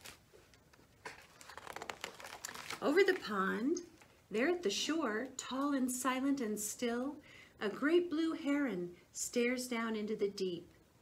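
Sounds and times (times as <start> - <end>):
paper page turning: 0.0 - 4.1.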